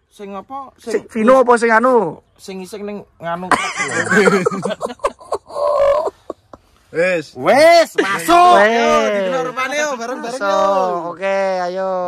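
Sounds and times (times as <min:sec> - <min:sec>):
men laughing: 0:03.5 - 0:06.9, 0:07.8 - 0:10.2
men making playful vocal noises: 0:03.5 - 0:11.8.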